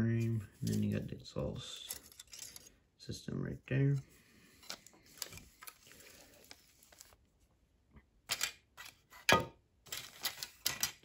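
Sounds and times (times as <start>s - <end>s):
plastic parts clicking and tapping: 9.9s - 11.0s.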